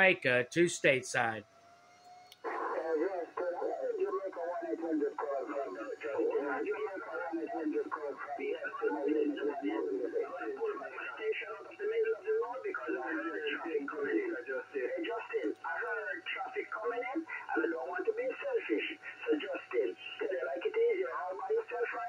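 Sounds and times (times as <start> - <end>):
voice over radio speaker: 0.0 - 1.4, 2.5 - 22.0.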